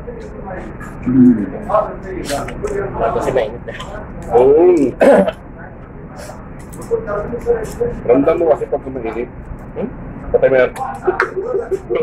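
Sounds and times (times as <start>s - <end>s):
throat clearing: 5.0s - 5.4s.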